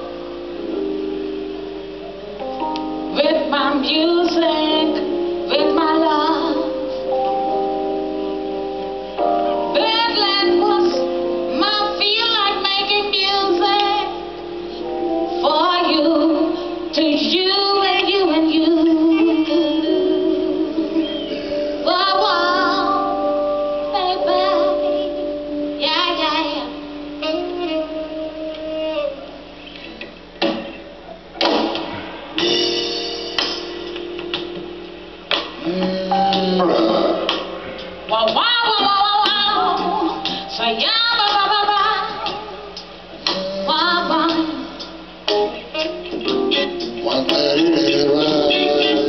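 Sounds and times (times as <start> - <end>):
instrumental backing: 0.0 - 49.0
woman singing into a microphone: 3.1 - 7.0, 9.7 - 14.3, 15.4 - 23.3, 23.9 - 25.1, 25.8 - 26.8, 38.1 - 42.6, 43.2 - 44.9
sharp drum hits: 31.4 - 34.7.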